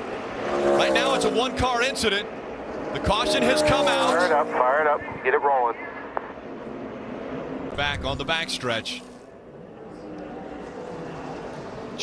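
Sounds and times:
race cars engines droning: 0.0 - 12.0.

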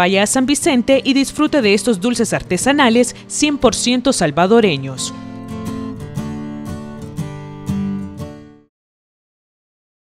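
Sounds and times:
strummed acoustic guitar: 4.6 - 8.7.

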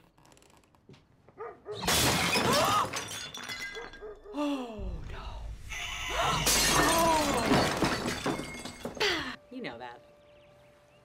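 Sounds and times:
glass or ceramic shattering: 1.8 - 4.2, 6.2 - 9.3.

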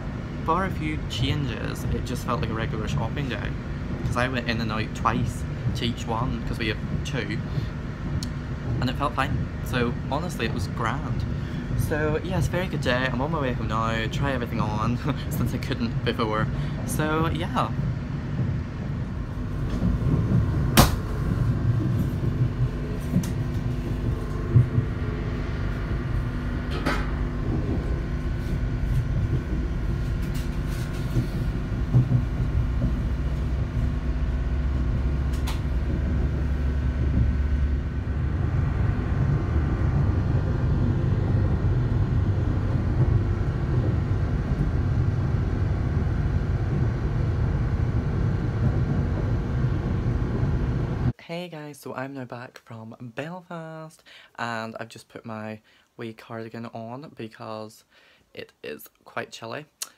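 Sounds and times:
train rumbling: 0.0 - 51.2.

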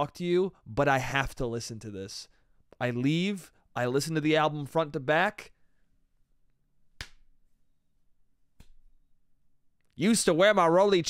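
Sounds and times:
finger snaps: 7.0 - 7.3, 8.5 - 8.8.

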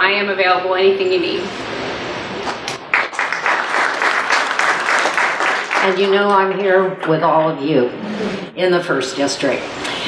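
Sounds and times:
people clapping: 2.4 - 7.2.

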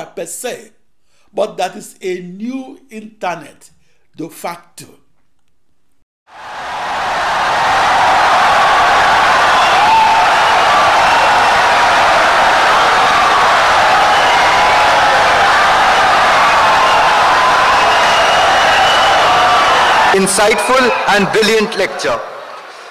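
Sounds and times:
audience applause and cheering: 6.3 - 22.9.

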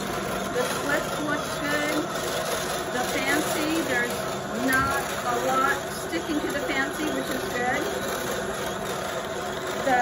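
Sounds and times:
drum carder humming: 0.0 - 10.0.

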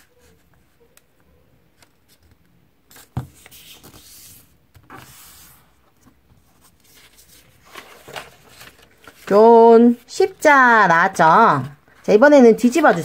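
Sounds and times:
paper being folded and creased: 1.8 - 13.0
paper rustling swishes: 2.9 - 13.0.

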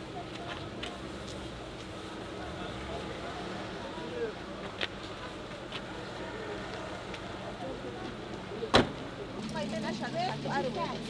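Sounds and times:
faint voices: 0.0 - 11.0
steady outdoor hum: 0.0 - 11.0.

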